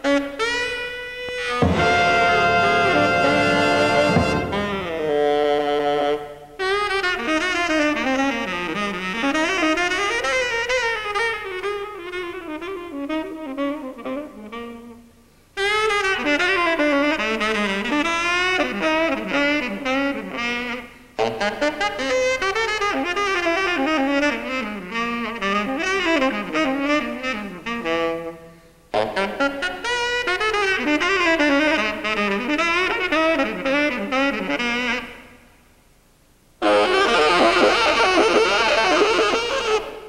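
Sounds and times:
tenor saxophone jazz solo: 0:00.0 - 0:35.5, 0:36.6 - 0:40.0
big band brass chord: 0:01.4 - 0:05.5.

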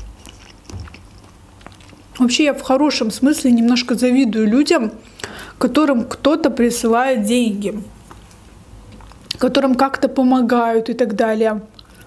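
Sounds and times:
woman chewing food: 0:00.0 - 0:02.3, 0:08.1 - 0:09.4, 0:11.7 - 0:12.0.

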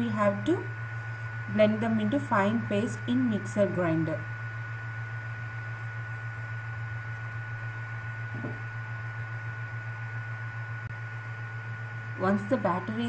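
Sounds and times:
high whine: 0:00.0 - 0:13.0
low hum: 0:00.0 - 0:13.0.

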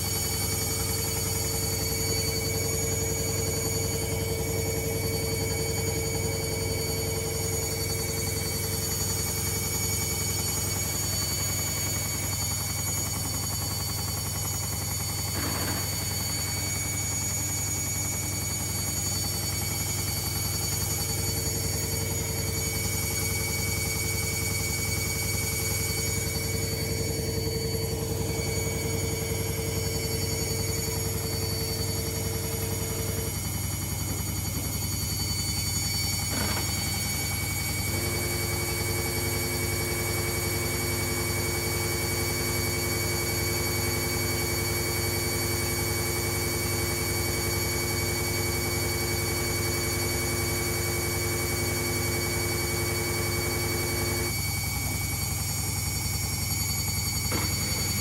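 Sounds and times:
washing machine spin cycle whine: 0:00.0 - 0:58.0.

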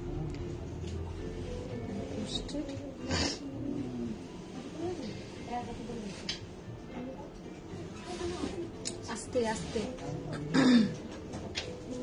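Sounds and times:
person clearing throat: 0:10.3 - 0:11.0.

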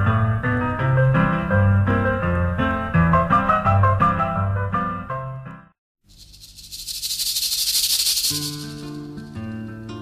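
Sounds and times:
fast high rattle: 0:06.0 - 0:09.4.

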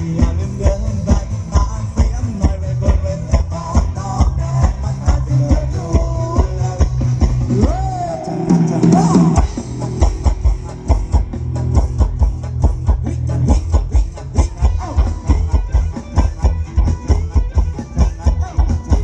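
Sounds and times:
live dance band music: 0:00.0 - 0:19.0.

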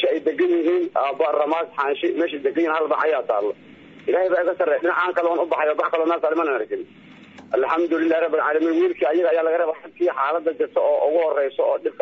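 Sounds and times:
person talking over phone: 0:00.0 - 0:12.0.

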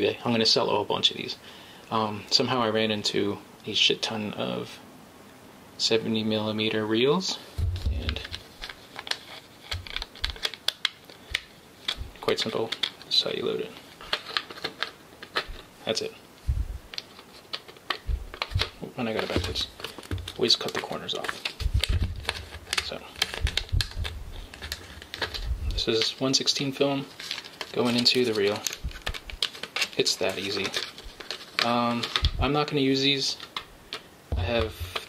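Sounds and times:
soft handling bumps: 0:07.6 - 0:08.4.

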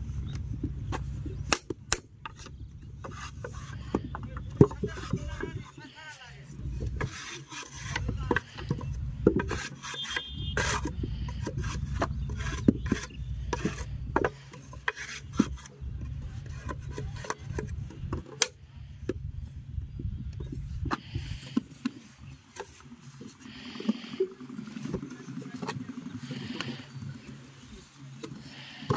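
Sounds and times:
clay scraping in wooden moulds: 0:00.1 - 0:19.6, 0:20.3 - 0:28.9
steady low rumble: 0:07.8 - 0:09.5, 0:15.2 - 0:22.2.

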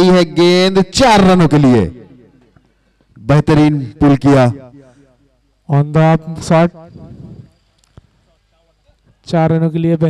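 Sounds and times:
man talking: 0:00.0 - 0:02.2, 0:03.2 - 0:04.8, 0:05.7 - 0:07.1, 0:08.3 - 0:10.0
faint background noise: 0:00.0 - 0:10.0.

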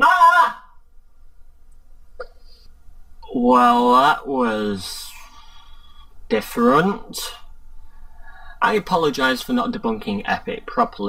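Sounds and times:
faint room rumble: 0:00.0 - 0:11.0.

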